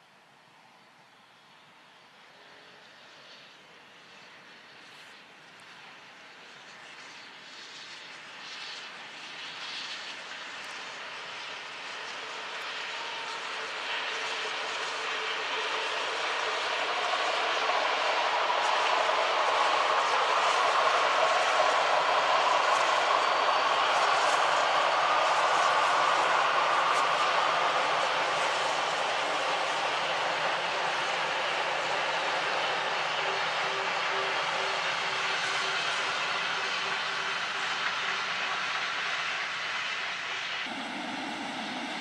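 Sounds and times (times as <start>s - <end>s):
steam train passing: 2.2s - 42.0s.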